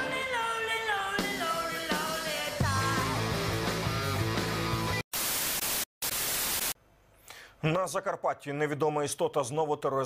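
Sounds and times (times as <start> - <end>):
tv static hiss: 5.1 - 6.8.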